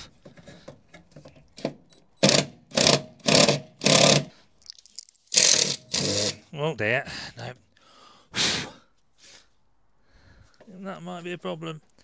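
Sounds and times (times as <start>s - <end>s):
cordless drill bursts: 1.6s - 4.3s, 5.3s - 6.4s.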